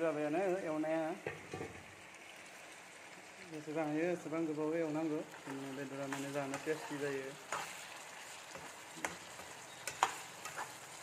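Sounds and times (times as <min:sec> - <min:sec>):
curry sizzling in a wok: 0:00.0 - 0:11.0.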